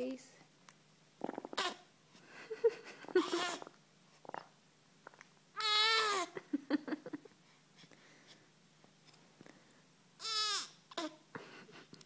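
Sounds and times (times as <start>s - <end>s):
baby grunting: 1.2s - 1.9s, 3.1s - 3.8s.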